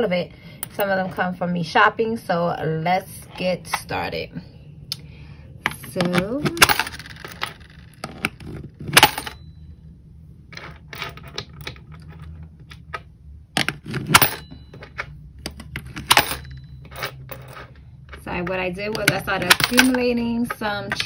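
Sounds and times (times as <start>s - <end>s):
coins clinking into jar: 6.4s - 8.2s, 8.8s - 9.4s, 13.6s - 21.0s.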